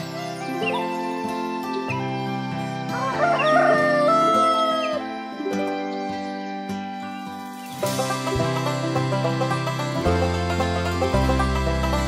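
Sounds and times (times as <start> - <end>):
background music: 0.0 - 12.0
rooster crowing: 2.9 - 5.1.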